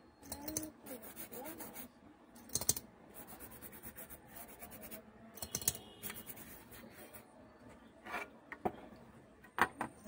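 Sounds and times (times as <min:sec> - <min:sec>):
toothbrush scrubbing circuit board: 0:00.3 - 0:01.9, 0:02.5 - 0:07.2.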